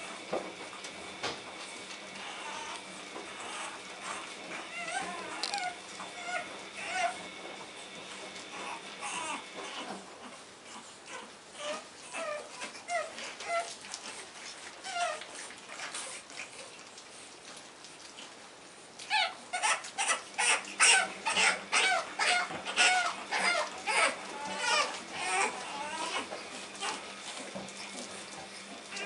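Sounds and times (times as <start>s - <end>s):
puppy whining and yelping: 2.2s - 7.8s, 8.4s - 16.8s, 19.1s - 29.0s.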